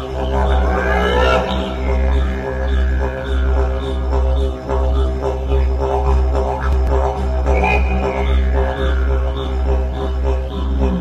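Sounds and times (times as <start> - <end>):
didgeridoo drone: 0.0 - 11.0.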